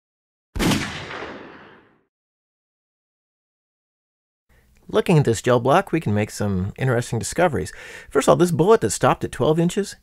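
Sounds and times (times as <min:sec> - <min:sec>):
revolver gunshot: 0:00.6 - 0:02.1.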